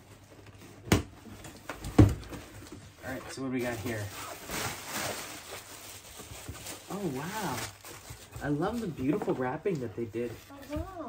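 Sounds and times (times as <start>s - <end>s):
plastic packing wrap crinkling: 3.6s - 11.0s.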